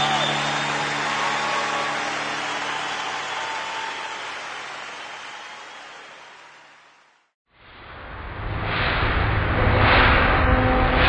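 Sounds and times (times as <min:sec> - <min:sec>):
audience applauding: 0:00.0 - 0:07.3.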